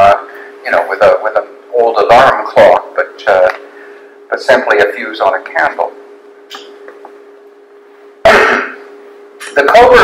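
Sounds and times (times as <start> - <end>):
steady low hum: 0.0 - 10.0
person coughing: 8.2 - 8.9.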